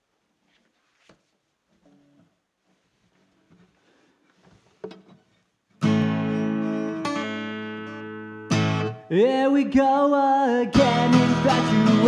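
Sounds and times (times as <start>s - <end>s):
guitar handling noises: 0.4s - 7.2s
acoustic guitar chord strums: 5.7s - 12.0s.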